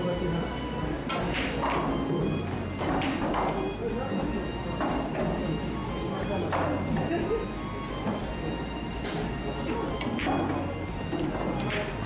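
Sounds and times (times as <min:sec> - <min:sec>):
background music: 0:00.0 - 0:12.0
pool balls knocking: 0:01.1 - 0:03.8, 0:04.8 - 0:05.5, 0:10.0 - 0:12.0.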